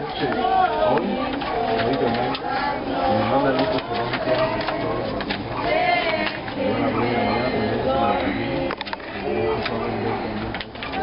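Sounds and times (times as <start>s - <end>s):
people and children chattering: 0.0s - 11.0s.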